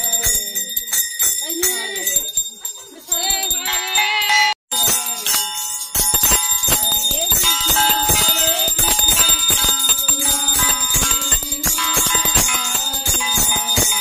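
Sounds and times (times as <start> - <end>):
hand bell rung rapidly: 0.0 - 14.0.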